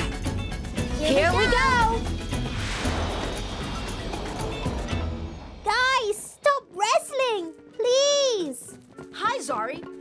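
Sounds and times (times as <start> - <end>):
background music: 0.0 - 10.0
cartoon jet whoosh: 1.7 - 6.6.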